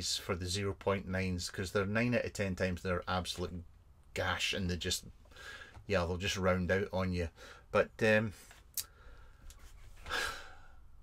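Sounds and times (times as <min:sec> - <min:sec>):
faint room hum: 0:00.0 - 0:11.0
man sighing: 0:10.1 - 0:10.8.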